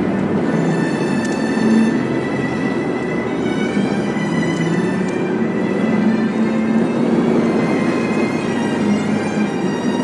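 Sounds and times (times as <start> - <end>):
road and tyre noise in car: 0.0 - 10.0.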